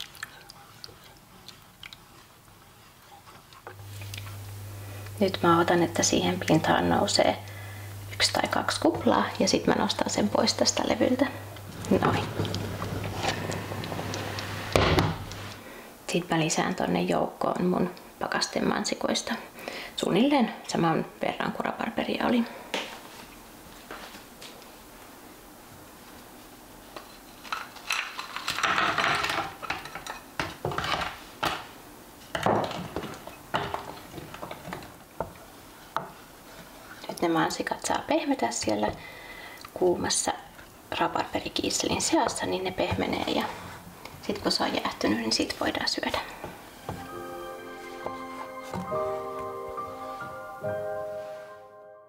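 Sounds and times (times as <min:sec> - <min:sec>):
steady low hum: 0:00.2 - 0:27.2
wooden spoon scraping saucepan: 0:11.7 - 0:15.5.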